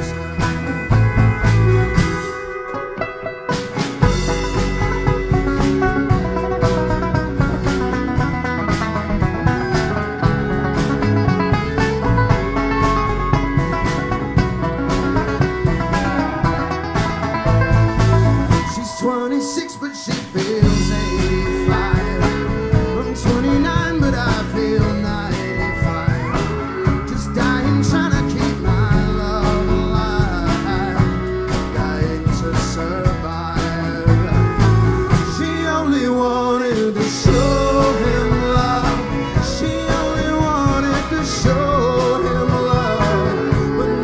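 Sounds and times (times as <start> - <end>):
electric bass: 0.0 - 19.0, 20.4 - 44.0
acoustic guitar: 0.0 - 44.0
banjo: 0.0 - 44.0
drum kit beat: 0.0 - 44.0
fiddle: 0.0 - 44.0
live folk-country band playing: 0.0 - 44.0.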